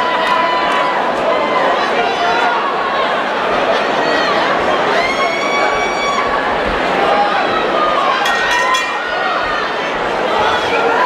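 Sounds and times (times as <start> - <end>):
crowd noise and shouting: 0.0 - 11.0.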